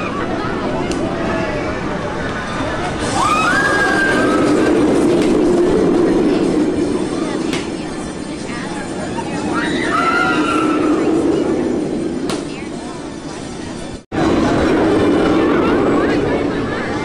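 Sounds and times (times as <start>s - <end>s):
roller coaster rumbling on track: 0.0s - 17.0s
riders screaming: 3.0s - 4.8s, 9.5s - 11.2s.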